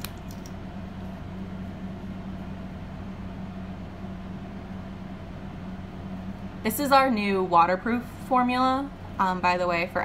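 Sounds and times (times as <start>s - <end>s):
low room hum with hiss: 0.0s - 10.0s.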